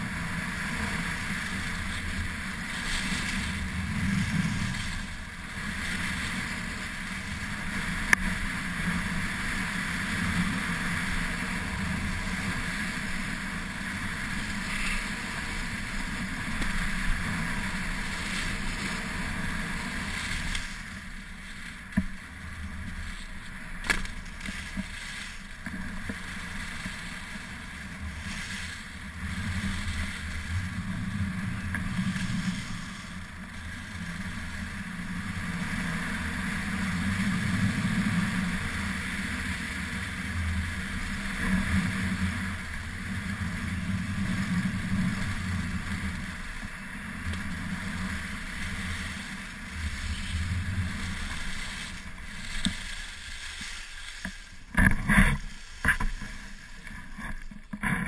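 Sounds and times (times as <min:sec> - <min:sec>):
wind on camera microphone: 0:00.0 - 0:23.8
skis sliding on snow: 0:00.0 - 0:58.0.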